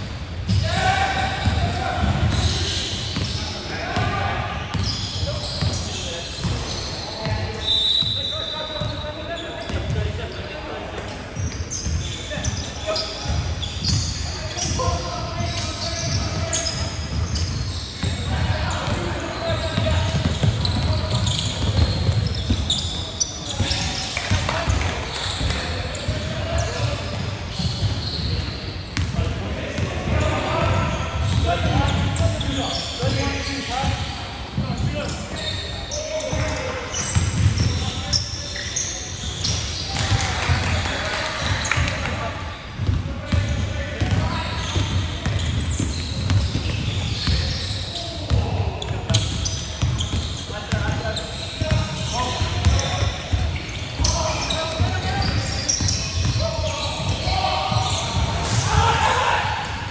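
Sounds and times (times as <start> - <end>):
sneakers squeaking: 0.4 - 59.9
players calling indistinctly: 43.3 - 59.9.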